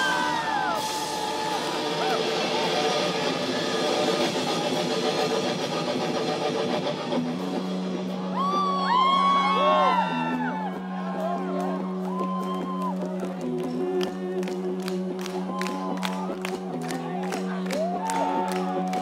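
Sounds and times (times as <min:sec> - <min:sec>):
rock band playing live: 0:00.0 - 0:19.0.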